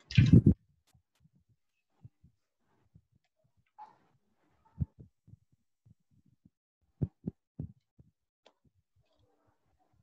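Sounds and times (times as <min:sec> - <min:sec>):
soft low thumps: 0:04.8 - 0:08.2.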